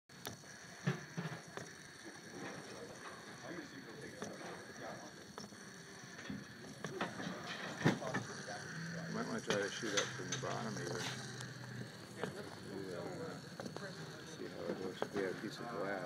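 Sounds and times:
toy robot motor clicking: 0.1 - 16.0.

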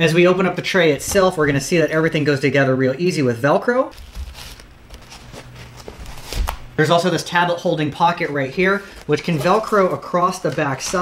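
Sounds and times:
fabric rustling: 3.9 - 6.8.

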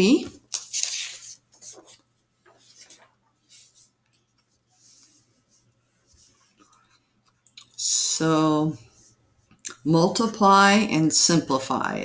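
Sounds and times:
paper pages turning: 0.2 - 5.2.

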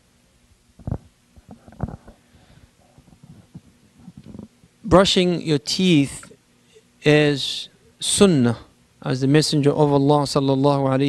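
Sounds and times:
microphone handling thumps: 0.8 - 2.3, 2.9 - 4.6.

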